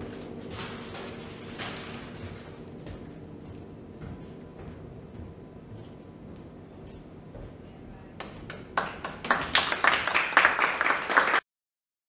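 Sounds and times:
audience applause: 8.6 - 11.4.

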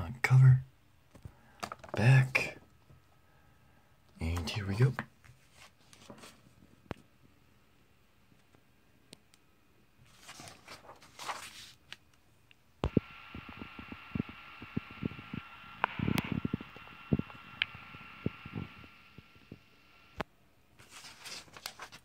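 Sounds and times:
mechanical hum with high whine: 0.0 - 22.0
comic book pages rustling: 4.2 - 7.1, 10.0 - 12.1, 20.8 - 22.0.

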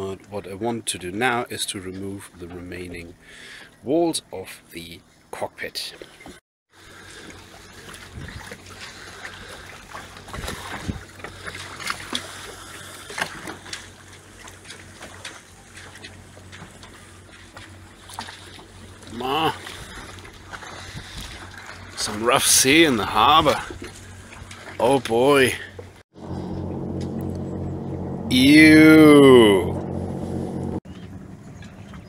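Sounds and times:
water lapping against boat hull: 0.0 - 3.8, 5.2 - 26.0
steady low hum: 25.6 - 30.8.

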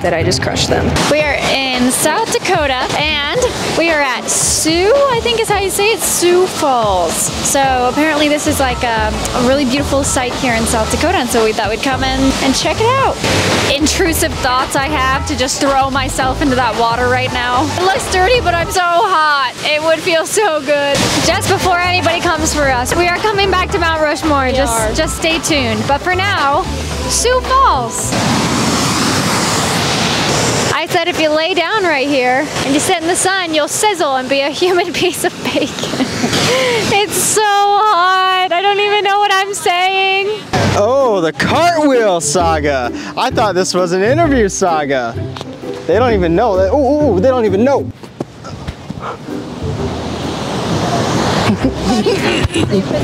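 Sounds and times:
waterfall rushing over rock: 0.4 - 43.4.

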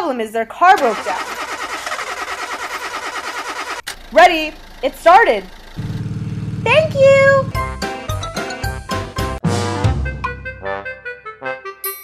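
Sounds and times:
car engine cranking: 0.7 - 7.7.

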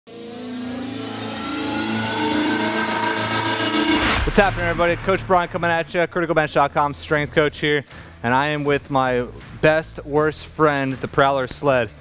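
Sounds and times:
rising intro sound effect: 0.1 - 6.8.

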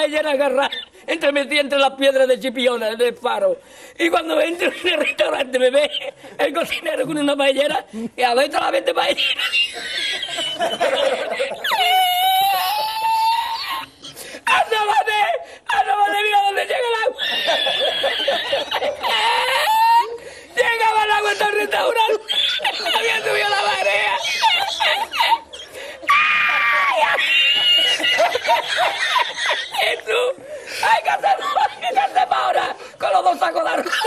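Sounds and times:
man's high-pitched squealing laugh: 8.7 - 34.0.

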